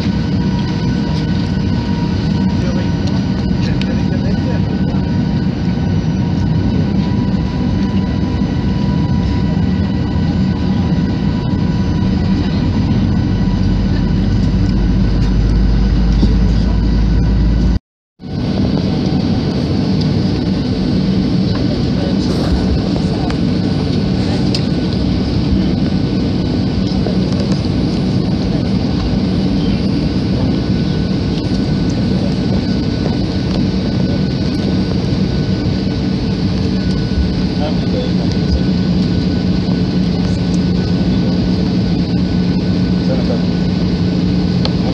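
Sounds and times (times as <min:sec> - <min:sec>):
airliner engines humming: 0:00.0 - 0:44.9
rush of cabin air: 0:22.1 - 0:24.8.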